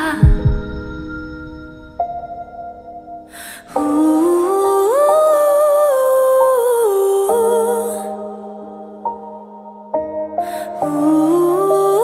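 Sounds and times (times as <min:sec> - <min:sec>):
wordless singing voice: 0:00.0 - 0:01.2, 0:03.4 - 0:12.0
slow ballad music: 0:00.0 - 0:12.0.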